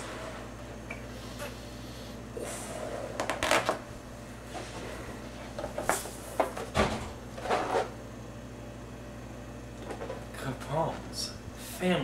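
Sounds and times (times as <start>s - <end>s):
rubbing of stretched rubber: 3.1s - 3.8s.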